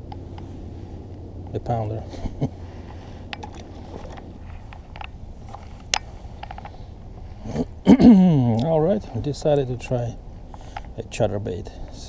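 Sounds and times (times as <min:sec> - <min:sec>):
low steady rumble: 0:00.0 - 0:12.0
fishing tackle clicks and knocks: 0:03.2 - 0:06.8.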